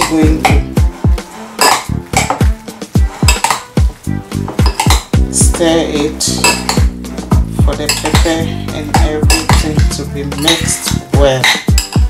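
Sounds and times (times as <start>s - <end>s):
spoon scraping ceramic bowl: 0.0s - 2.4s, 3.0s - 3.8s, 6.0s - 6.9s
music with deep bass beat: 0.1s - 12.0s.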